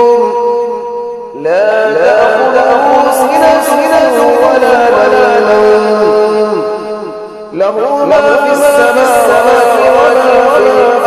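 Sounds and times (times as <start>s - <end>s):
man reciting melodically: 0.0s - 11.0s.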